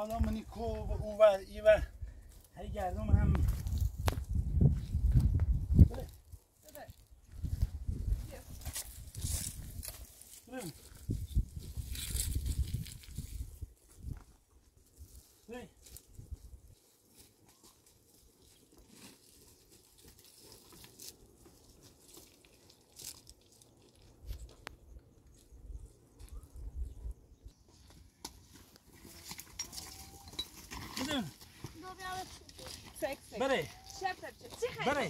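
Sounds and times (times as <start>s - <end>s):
footsteps on stony ground: 2.2s - 26.7s, 27.4s - 35.0s
wind rumble on microphone: 2.9s - 6.2s, 7.2s - 9.9s, 11.0s - 14.3s.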